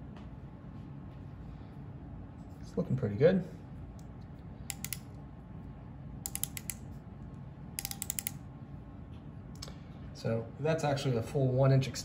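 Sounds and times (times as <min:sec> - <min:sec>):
micrometer ratchet clicking: 0:04.7 - 0:05.1, 0:06.2 - 0:06.8, 0:07.8 - 0:08.4.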